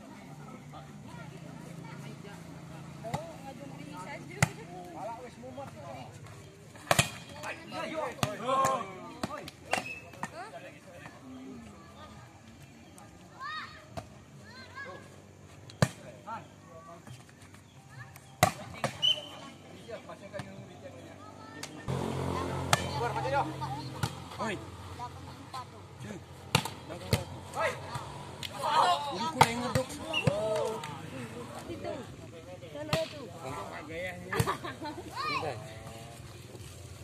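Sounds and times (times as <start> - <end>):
chatter of people: 0.0 - 37.0
hands slapping volleyball: 8.2 - 10.4, 26.5 - 27.2, 29.3 - 31.0.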